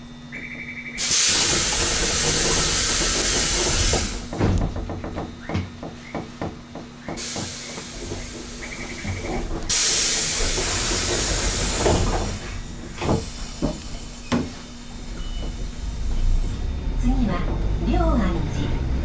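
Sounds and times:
pneumatic air hissing: 1.0s - 4.4s, 7.1s - 16.5s.

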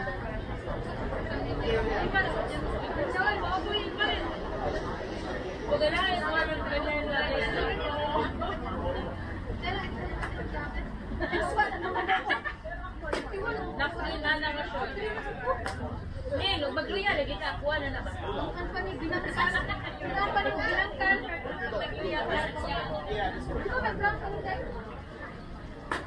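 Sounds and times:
players chattering and calling out: 0.0s - 26.0s.

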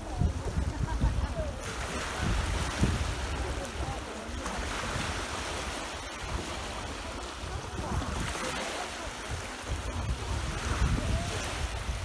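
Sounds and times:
small waves breaking on shore: 0.0s - 12.0s
wind on microphone: 0.0s - 12.0s.

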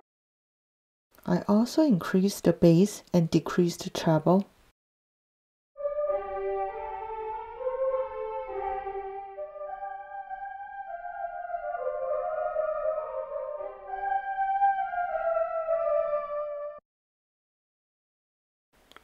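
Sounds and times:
synth choir singing wordless notes: 5.8s - 16.8s.

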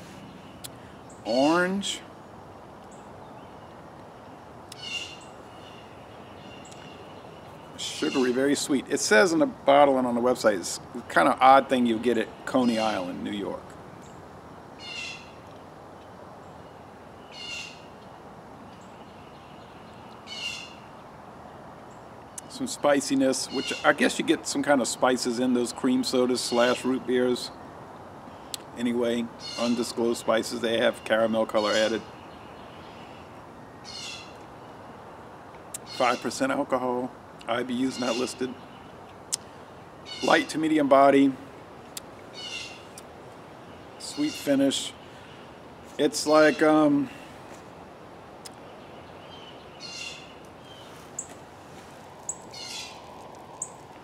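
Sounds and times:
bird calling: 0.0s - 21.0s, 21.9s - 27.6s, 28.2s - 34.9s, 35.7s - 47.7s, 48.5s - 54.0s
faint outdoor background noise: 0.0s - 54.0s
bird calling high notes: 4.7s - 8.8s, 23.4s - 24.1s, 29.4s - 30.2s, 37.6s - 38.8s, 40.0s - 40.8s, 44.0s - 45.4s, 46.2s - 47.3s.

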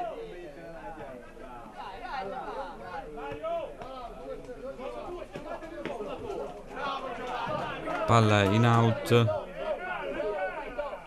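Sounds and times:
voices calling and chatting: 0.9s - 9.9s.

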